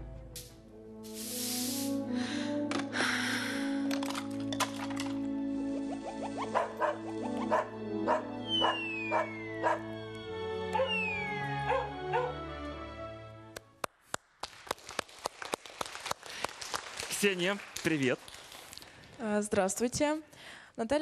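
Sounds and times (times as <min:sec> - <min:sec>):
cartoon music with beat: 0:05.2 - 0:12.6
dog barking: 0:06.4 - 0:09.8, 0:10.7 - 0:11.0, 0:11.7 - 0:12.4
falling whistle glide: 0:08.5 - 0:09.7, 0:10.8 - 0:11.4.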